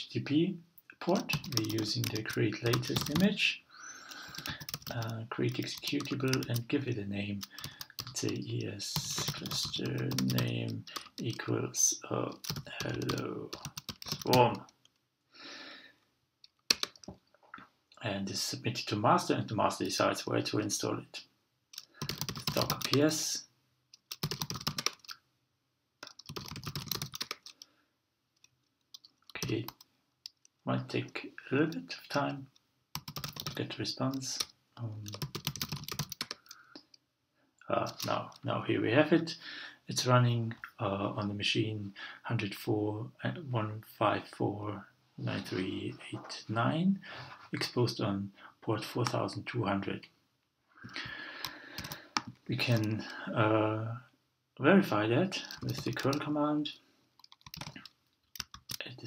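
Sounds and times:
computer keyboard typing: 1.2s - 3.3s, 4.1s - 6.7s, 7.4s - 11.4s, 12.3s - 14.6s, 16.7s - 17.1s, 21.7s - 23.1s, 24.0s - 25.2s, 26.0s - 27.7s, 28.4s - 30.5s, 32.9s - 36.6s, 37.8s - 38.2s, 50.9s - 53.0s, 55.4s - 56.2s, 57.2s - 58.8s.

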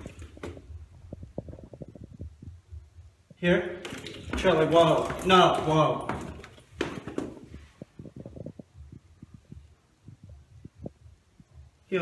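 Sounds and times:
footsteps on wooden stairs: 3.8s - 9.8s.

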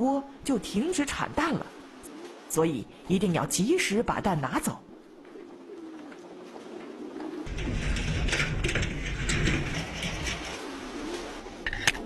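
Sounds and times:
pigeons cooing: 1.0s - 3.9s, 4.8s - 12.0s.

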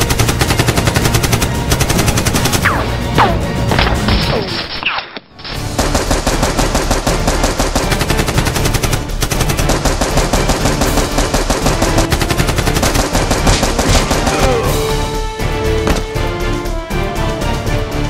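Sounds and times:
rapid machine-gun fire: 0.0s - 2.7s, 5.6s - 14.6s.

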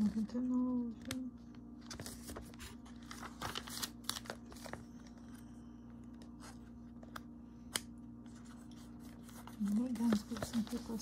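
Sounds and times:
steady low hum: 0.0s - 11.0s
glossy pages rustling: 1.8s - 5.4s, 6.0s - 11.0s.

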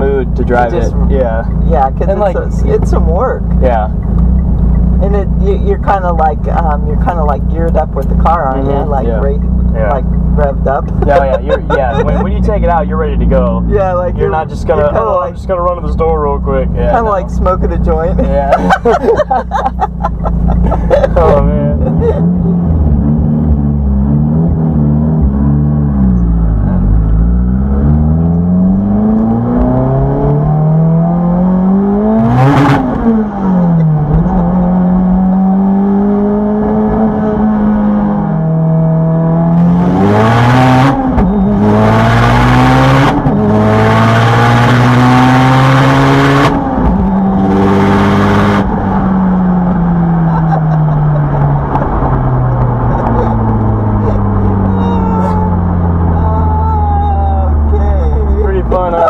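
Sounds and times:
turbocharged car engine revving: 0.0s - 59.0s.

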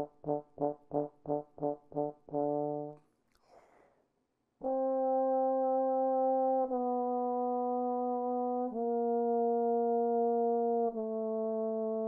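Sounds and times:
solo trombone notes: 0.0s - 3.0s, 4.6s - 12.0s
breath: 3.3s - 4.2s.

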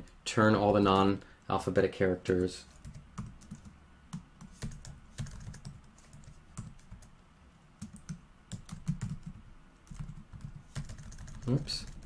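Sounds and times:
typing on computer keyboard: 2.7s - 7.1s, 7.8s - 12.0s.

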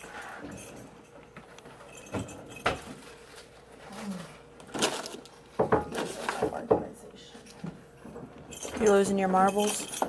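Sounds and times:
keys jingling: 8.5s - 10.0s.

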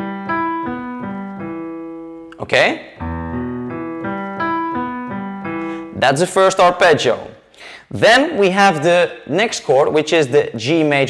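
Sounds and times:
digital piano arpeggio: 0.0s - 6.9s.

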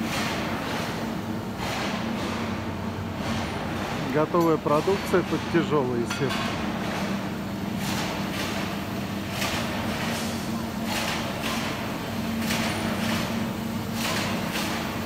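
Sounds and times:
industrial machinery drone: 0.0s - 15.0s.

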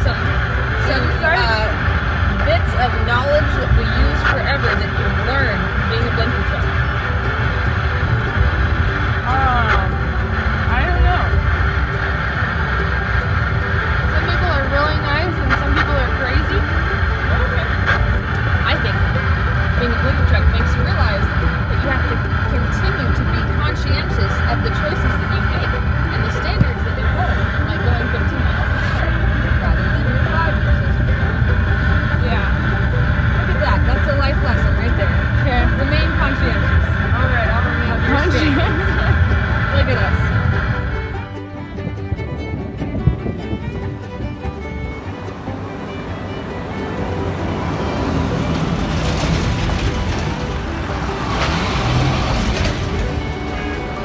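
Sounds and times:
truck road and engine rumble: 0.0s - 54.0s.

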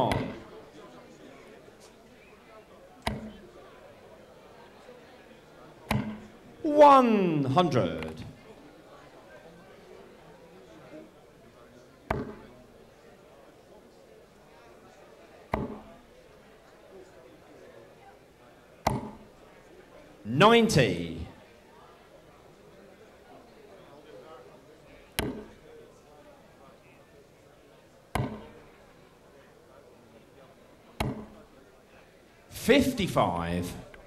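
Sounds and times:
dart striking dartboard: 0.1s - 0.5s, 3.0s - 3.4s, 5.9s - 6.3s, 12.1s - 12.4s, 15.5s - 15.9s, 18.9s - 19.2s, 25.2s - 25.5s, 28.2s - 28.6s, 31.0s - 31.4s.

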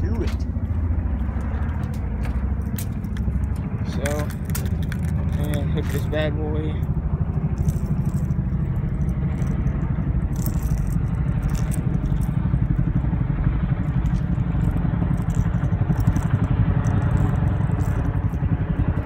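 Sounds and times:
faint ticks and rattles: 0.0s - 19.0s.

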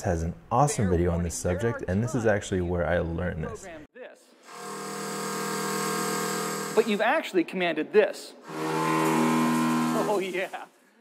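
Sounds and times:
steady motor hum with tones: 4.5s - 6.8s, 8.5s - 10.2s.

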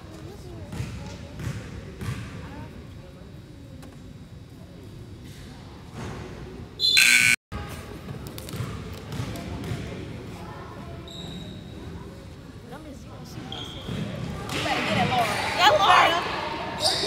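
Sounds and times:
crowd chatter: 0.0s - 17.0s
scoreboard buzzer: 6.8s - 7.4s.

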